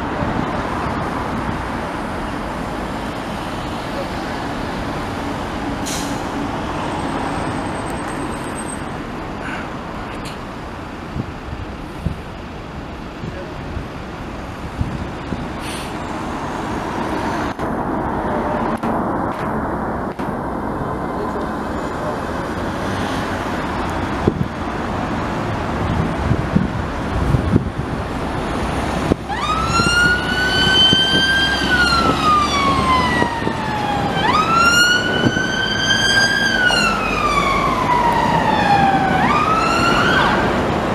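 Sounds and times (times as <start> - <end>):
road traffic passing: 0.0 - 40.9
emergency vehicle siren wailing: 28.4 - 40.9.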